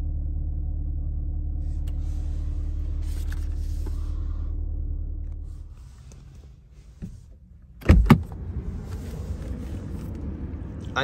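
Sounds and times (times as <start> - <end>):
steady low rumbling: 0.0 - 7.0.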